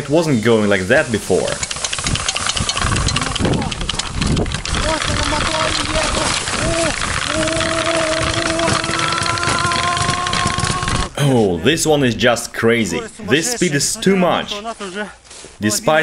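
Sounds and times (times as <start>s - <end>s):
rough rattling and rushing noise: 0.7s - 11.2s
electric motor whining: 1.9s - 11.2s.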